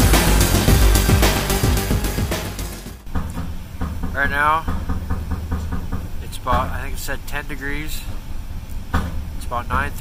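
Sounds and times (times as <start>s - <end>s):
background music: 0.0s - 3.2s
engine idling with rapid knock: 0.0s - 7.1s.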